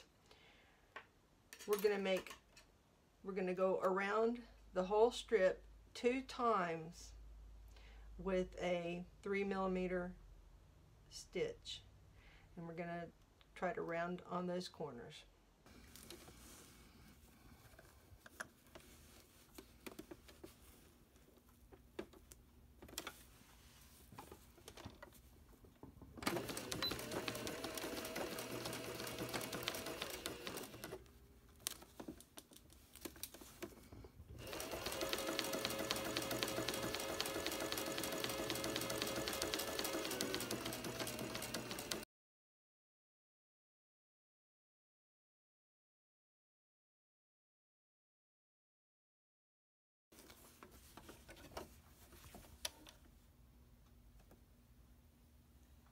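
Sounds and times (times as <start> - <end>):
sewing machine stitching: 26.2 - 31.0, 34.4 - 42.0.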